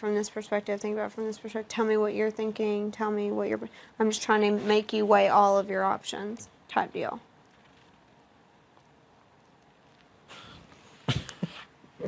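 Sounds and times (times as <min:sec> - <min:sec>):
person breathing: 0:10.3 - 0:11.1
person laughing briefly: 0:10.3 - 0:11.8.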